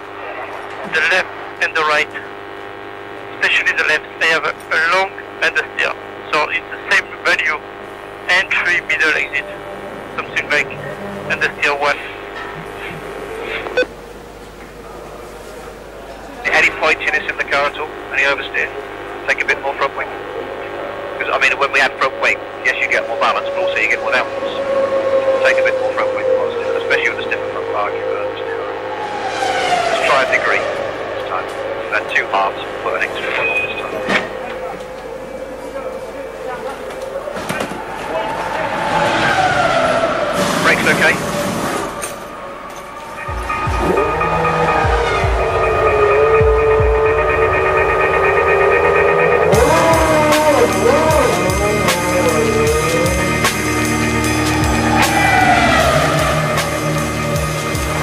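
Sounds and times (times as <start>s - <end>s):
line hum and hiss: 0.0s - 28.8s, 30.0s - 38.2s
racing cars passing: 23.1s - 58.0s
short electronic beep: 33.3s - 34.2s.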